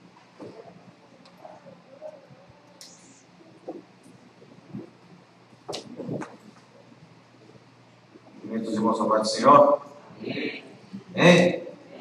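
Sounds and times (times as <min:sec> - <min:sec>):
microphone handling bump: 0:05.6 - 0:06.4.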